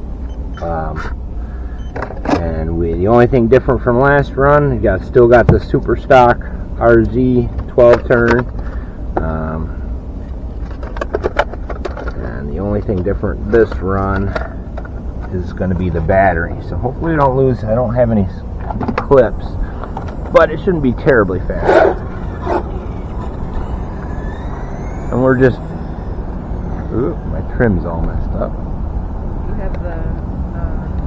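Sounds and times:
steady low rumble: 0.0 - 31.0
electric motor whine: 20.0 - 29.5.

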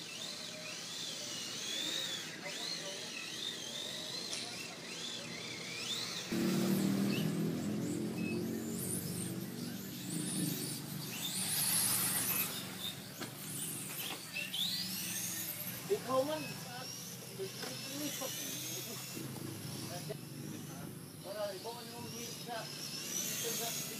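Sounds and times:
model car motor whining: 0.0 - 23.9
buzzing hum: 4.9 - 23.9.

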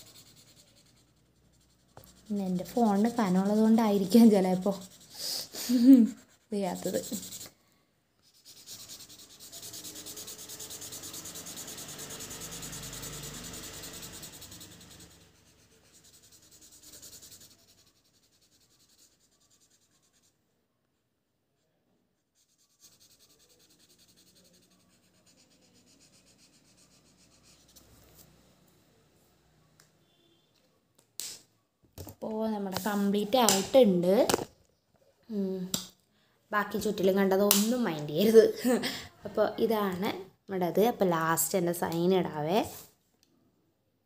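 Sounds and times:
pen scratching on paper: 0.0 - 7.5, 8.2 - 20.3, 22.4 - 28.3.

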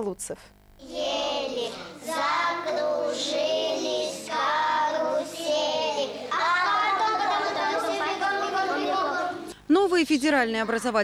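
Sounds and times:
young children singing: 0.8 - 9.6.

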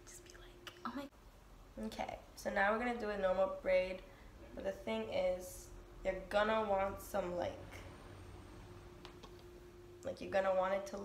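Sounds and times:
faint whispering: 0.0 - 1.1
woman speaking: 1.8 - 7.8, 10.0 - 11.0.

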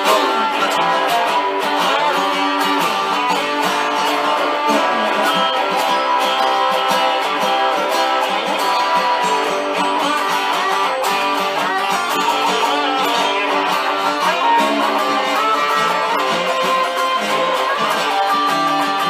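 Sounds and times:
electric guitar playing blues: 0.0 - 19.0.

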